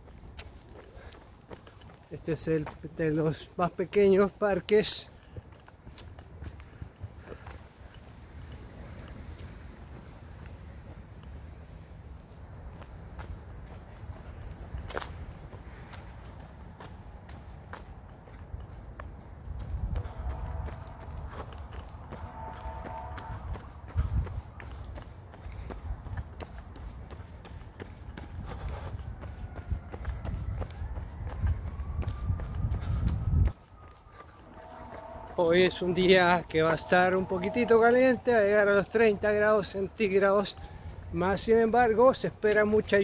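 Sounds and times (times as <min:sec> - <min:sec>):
footsteps on paved path: 0:00.0 - 0:43.0
wind rumble: 0:05.2 - 0:39.9.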